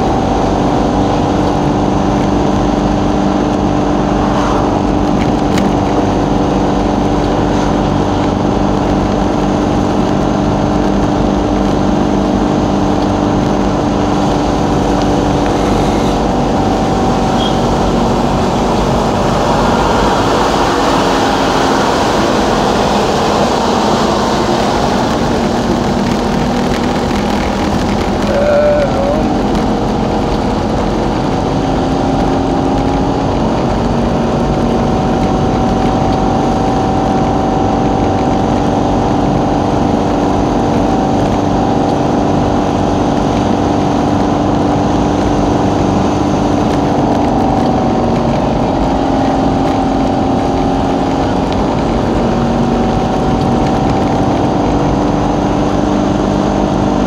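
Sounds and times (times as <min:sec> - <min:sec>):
vehicle engine drone: 0:00.0 - 0:57.0.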